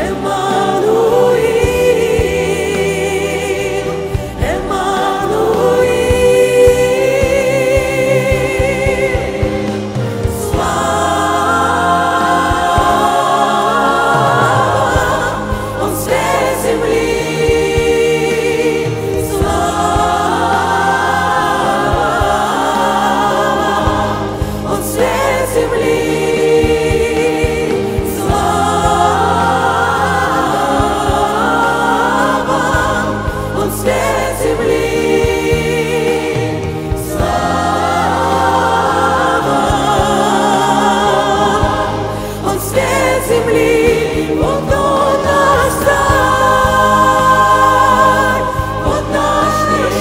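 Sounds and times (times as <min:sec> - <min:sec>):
male vocal group singing: 0:00.0 - 0:50.0
piano accompaniment: 0:00.0 - 0:50.0
woman singing lead: 0:00.0 - 0:50.0.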